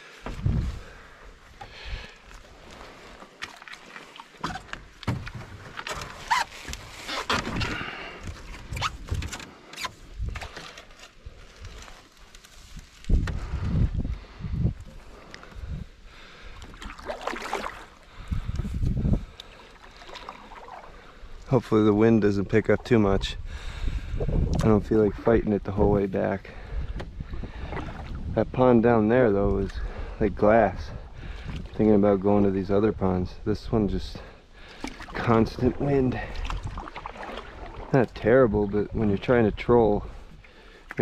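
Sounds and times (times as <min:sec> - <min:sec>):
paddle strokes splashing: 0:00.0 - 0:09.0, 0:16.2 - 0:21.9, 0:26.7 - 0:28.3, 0:34.6 - 0:39.4
paddle knocking against hull: 0:04.4 - 0:06.3.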